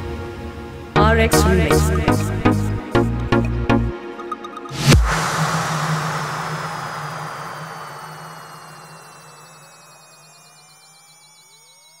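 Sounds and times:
wash of noise: 4.8s - 10.0s
low drone: 4.8s - 11.5s
sliding synth tones: 4.8s - 12.0s.

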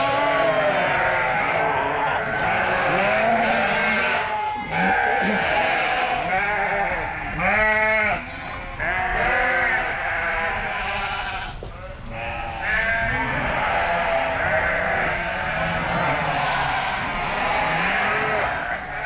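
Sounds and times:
sheep bleating: 0.0s - 19.0s.

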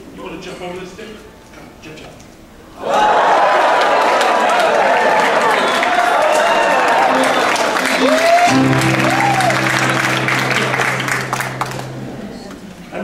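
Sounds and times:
audience applauding: 3.0s - 12.6s
vocal whoops: 5.6s - 9.8s
band playing low held chord: 7.0s - 13.0s.

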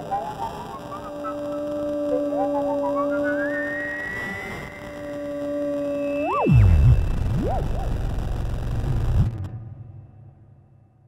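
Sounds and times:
high theremin tone: 0.0s - 9.5s
low theremin tone: 0.0s - 9.5s.

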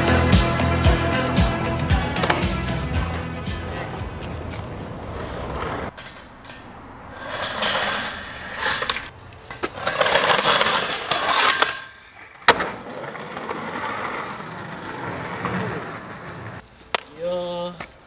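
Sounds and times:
skateboard wheels rolling on concrete: 0.0s - 18.0s
skateboard landing crack: 7.2s - 17.2s.

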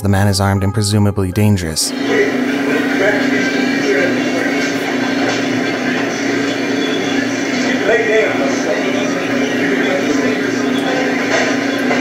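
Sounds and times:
faint muffled voices: 1.9s - 12.0s.

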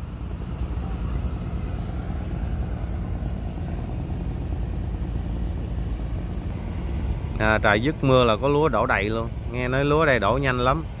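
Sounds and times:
boat engine humming: 0.0s - 11.0s.

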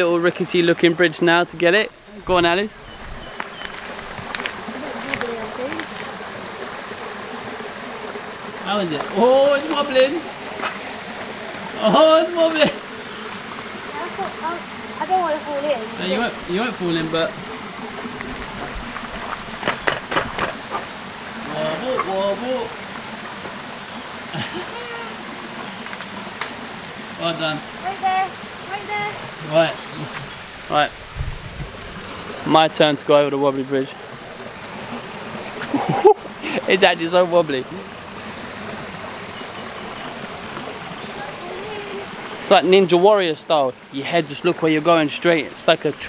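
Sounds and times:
outdoor background hiss: 0.0s - 46.0s
stream water flowing: 0.0s - 46.0s.

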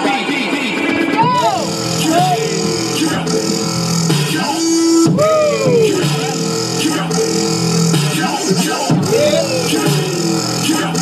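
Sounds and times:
electronic music with sliding tones: 0.9s - 11.0s.

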